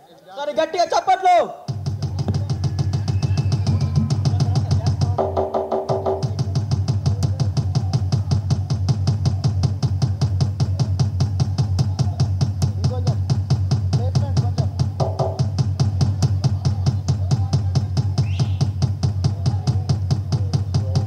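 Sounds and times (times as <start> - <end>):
folk dance music with drums: 1.7 - 21.0
held pitched note: 3.1 - 6.5.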